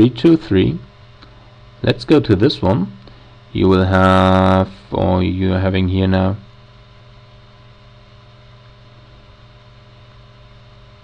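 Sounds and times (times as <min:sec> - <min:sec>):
speech: 0:00.0 - 0:00.9, 0:01.8 - 0:03.0, 0:03.6 - 0:06.4
low electrical hum: 0:00.0 - 0:11.0.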